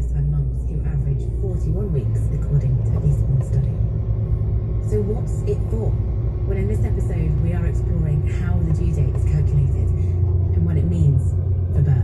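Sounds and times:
person talking: 0.0s - 3.8s, 6.5s - 10.0s
vehicle engine and tyres rumbling: 0.0s - 12.0s.

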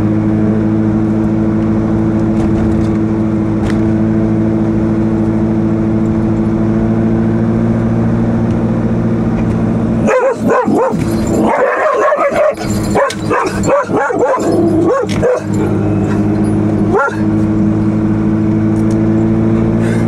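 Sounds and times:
car engine droning: 0.0s - 20.0s
dog barking and yipping: 10.0s - 17.4s.

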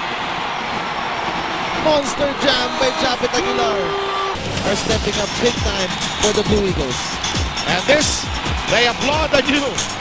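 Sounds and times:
crowd cheering: 0.0s - 10.0s
commentator speaking: 1.8s - 4.0s.

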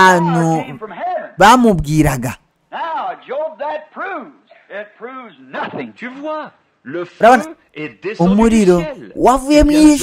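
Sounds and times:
person preaching: 0.0s - 4.3s, 8.2s - 10.0s.

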